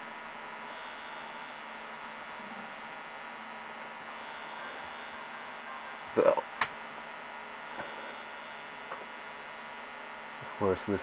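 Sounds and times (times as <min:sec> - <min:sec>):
television electrical hum and hiss: 0:00.0 - 0:11.0.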